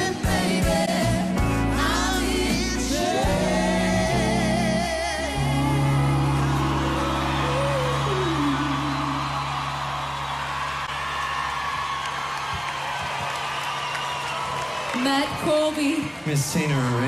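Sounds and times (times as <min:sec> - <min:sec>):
person singing: 0:00.0 - 0:09.4
crowd cheering and applauding: 0:05.3 - 0:17.0.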